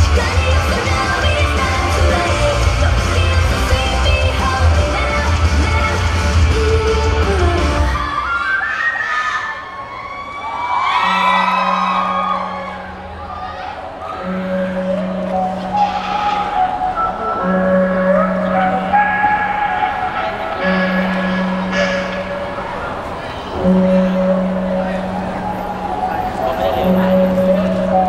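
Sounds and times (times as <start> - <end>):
loud dance track: 0.0 - 8.2
audience shouting and cheering: 0.0 - 28.0.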